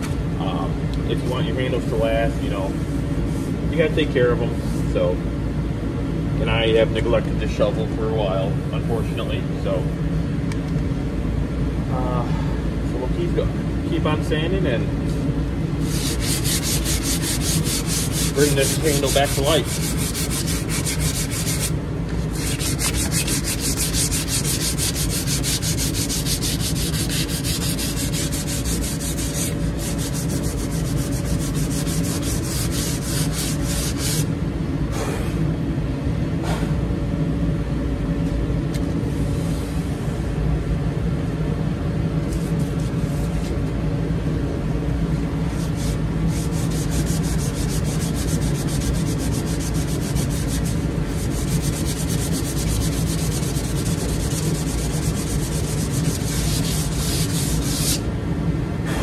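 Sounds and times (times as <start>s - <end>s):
sandpaper rubbing on wood: 15.8s - 34.3s, 42.3s - 43.6s, 45.5s - 58.0s.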